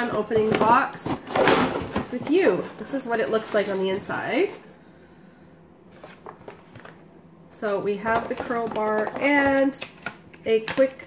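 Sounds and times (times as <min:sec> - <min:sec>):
packaging clicks and rustles: 0:05.9 - 0:07.0, 0:08.0 - 0:11.0.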